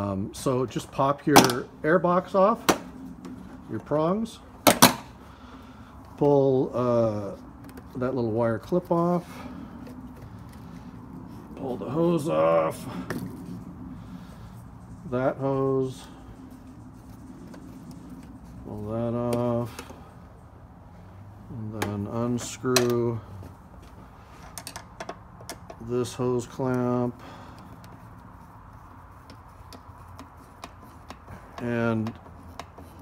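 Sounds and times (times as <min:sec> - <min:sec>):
low steady hum: 0:00.0 - 0:33.0
rubber hose rubbing and handling: 0:00.0 - 0:33.0.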